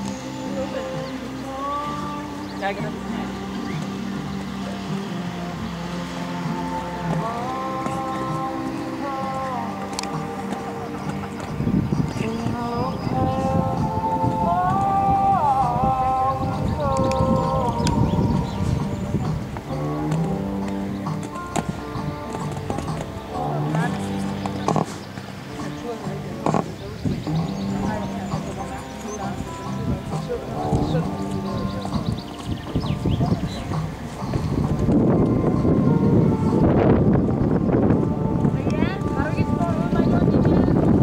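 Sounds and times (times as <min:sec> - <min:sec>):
horse hoofbeats on sand: 0:17.2 - 0:36.0.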